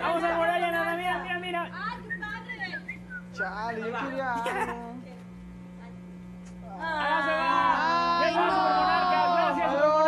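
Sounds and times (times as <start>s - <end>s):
low electrical hum: 0.0s - 10.0s
people chanting and calling out: 6.7s - 10.0s.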